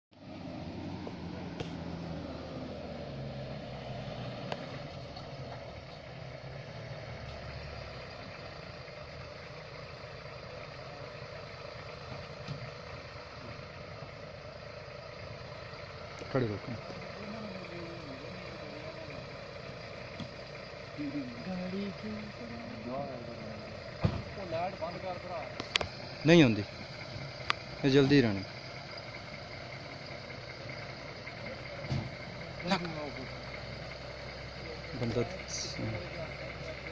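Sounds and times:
car engine driving and idling: 0.1s - 36.9s.

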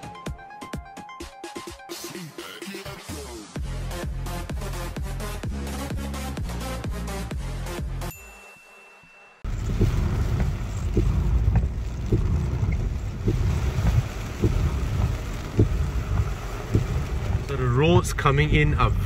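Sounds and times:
soft irregular knocks: 9.5s - 17.5s
car interior rumble: 9.5s - 19.0s
rain on car body: 9.5s - 19.0s
man speaking: 17.4s - 19.0s.

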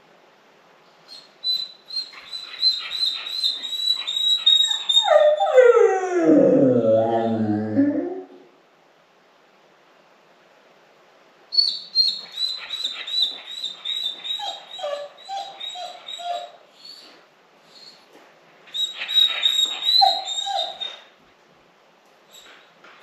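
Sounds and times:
dog whining and whimpering: 1.1s - 8.4s, 11.6s - 18.0s, 18.7s - 21.1s.

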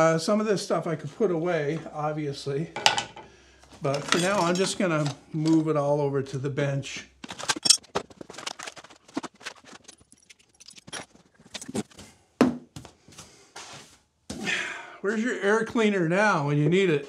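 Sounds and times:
tools clattering on table: 2.8s - 5.6s, 7.2s - 11.7s.

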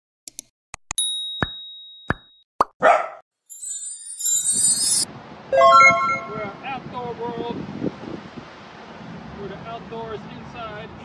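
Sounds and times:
bell-like ding: 1.0s - 2.2s, 3.5s - 6.5s
high twinkling shimmer: 3.5s - 6.4s.

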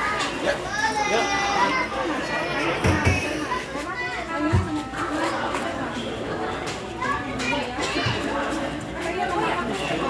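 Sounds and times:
crowd talking over one another: 0.0s - 10.0s.

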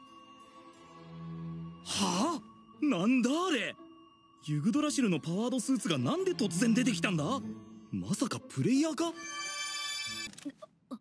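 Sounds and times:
low background music note: 0.0s - 10.3s
person speaking: 1.9s - 3.8s, 4.4s - 9.2s.

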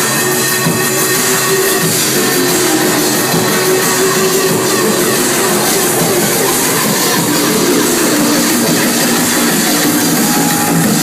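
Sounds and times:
loud drum and bass club music: 0.0s - 11.0s.

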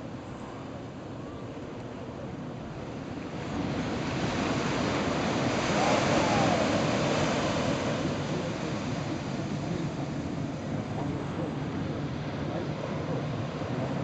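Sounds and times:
ocean surf washing onto beach: 1.7s - 14.0s.

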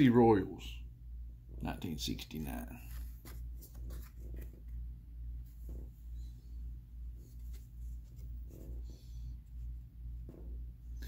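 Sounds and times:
cards rustling and tapping: 2.8s - 4.9s.

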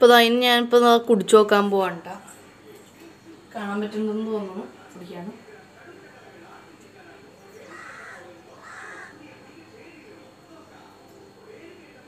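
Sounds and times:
crow cawing: 7.6s - 9.2s.

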